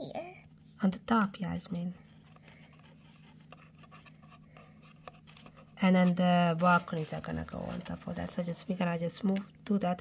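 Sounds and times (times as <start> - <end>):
woman speaking: 0.8 - 2.0, 5.8 - 10.0.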